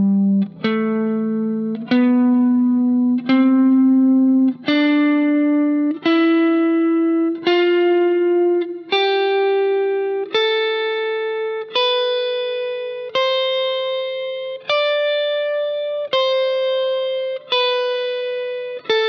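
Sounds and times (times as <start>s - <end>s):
electric guitar playing a scale: 0.0s - 19.0s.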